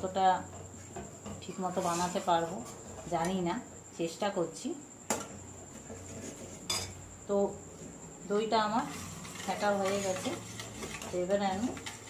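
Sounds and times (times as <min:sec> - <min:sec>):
dishes and utensils clinking: 0:06.6 - 0:07.0.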